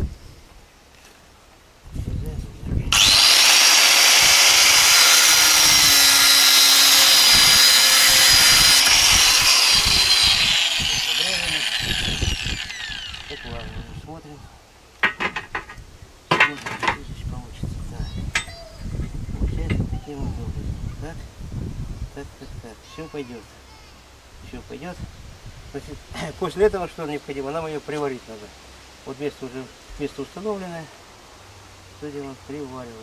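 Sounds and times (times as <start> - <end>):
angle grinder cutting steel: 2.9 - 14.0
grinder disc winding down: 2.9 - 14.0.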